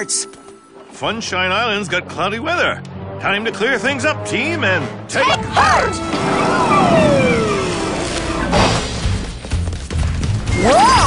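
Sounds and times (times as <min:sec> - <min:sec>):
falling whistle: 0:06.1 - 0:08.5.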